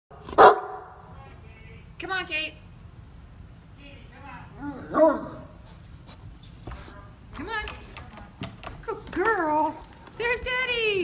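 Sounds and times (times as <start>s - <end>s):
dog barking: 0.2s - 1.0s.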